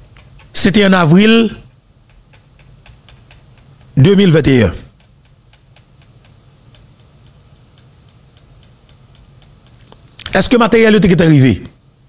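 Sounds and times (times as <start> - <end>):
low steady hum: 0.0 - 12.0
faint light ticking: 5.0 - 10.3.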